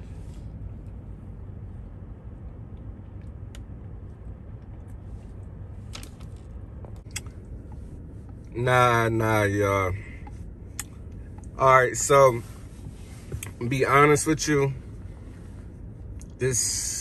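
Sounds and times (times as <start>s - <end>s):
car cabin rumble: 0.0s - 17.0s.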